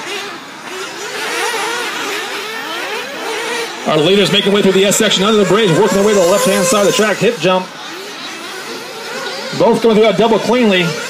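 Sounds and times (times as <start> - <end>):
small model car engines whining: 0.0 - 11.0.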